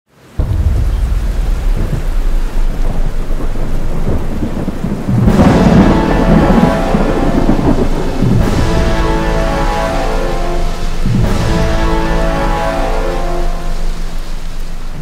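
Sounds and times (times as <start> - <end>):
steady rain: 0.1 - 15.0
thunderclap: 0.2 - 13.9
rumbling thunder: 0.3 - 14.0.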